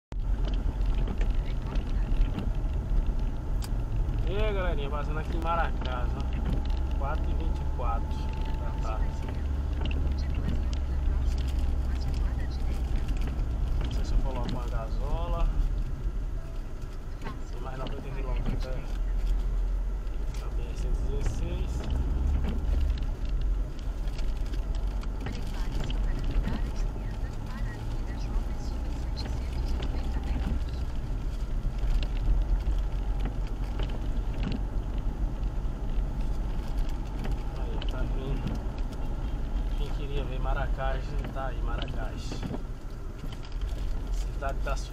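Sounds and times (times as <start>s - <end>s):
car engine and tyres rumbling: 0.0s - 44.9s.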